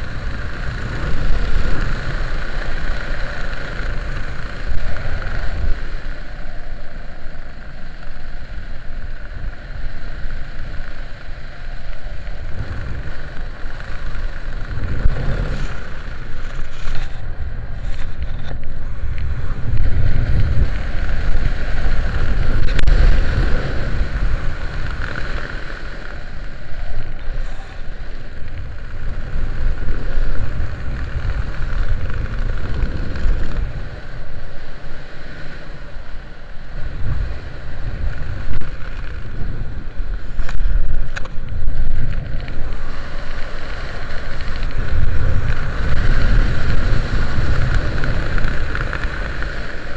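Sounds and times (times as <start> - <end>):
wind buffeting microphone: 0.0 - 49.9.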